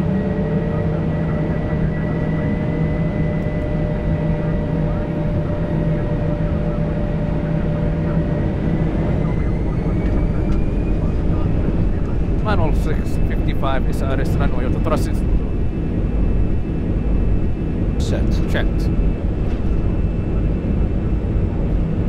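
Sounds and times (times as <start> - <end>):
jet engines whining: 0.0 - 22.0.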